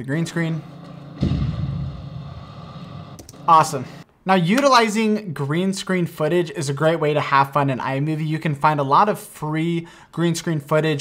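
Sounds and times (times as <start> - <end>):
deep rumble: 1.2 - 3.2
explosion boom: 1.2 - 3.2.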